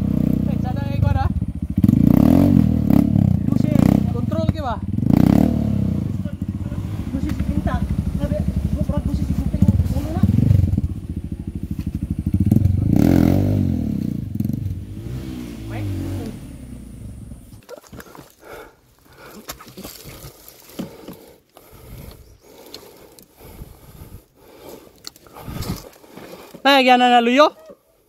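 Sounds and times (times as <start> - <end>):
dirt bike engine revving: 0.0 - 17.6.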